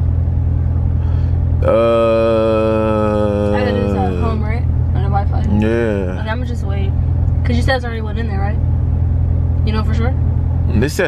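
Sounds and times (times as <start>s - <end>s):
car engine idling: 0.0s - 11.0s
person humming a long note: 1.6s - 4.5s, 5.5s - 6.3s.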